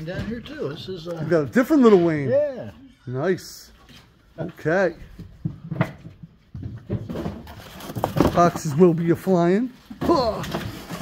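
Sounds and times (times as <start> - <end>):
knocks of vinyl records and boxes: 5.4 - 8.7
cardboard rustling: 7.0 - 9.4.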